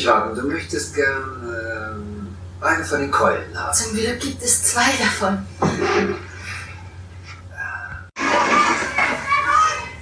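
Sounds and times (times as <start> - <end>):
children shouting and chattering: 8.2 - 10.0.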